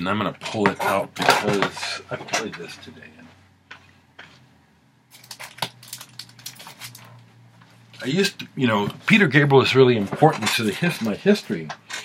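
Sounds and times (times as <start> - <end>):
record sleeves scraping and knocking: 0.4 - 2.9, 8.7 - 12.0.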